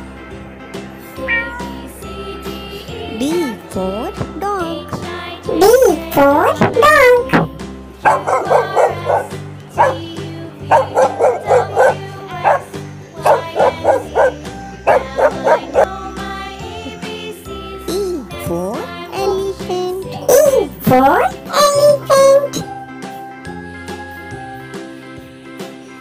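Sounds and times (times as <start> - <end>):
children's music: 0.0 - 26.0
small dog yapping: 8.1 - 10.0, 10.7 - 12.7, 13.3 - 15.9.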